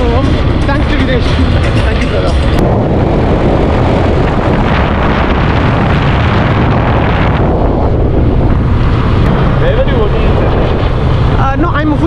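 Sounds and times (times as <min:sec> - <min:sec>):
wind rushing over microphone: 0:00.0 - 0:12.0
voices: 0:09.3 - 0:12.0.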